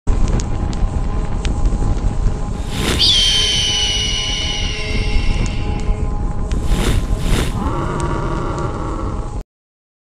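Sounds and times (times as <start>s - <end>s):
low fire rumble with crackles: 0.1s - 3.0s, 5.7s - 9.4s
high piercing tone: 2.6s - 6.2s
rising whoosh: 2.6s - 7.9s.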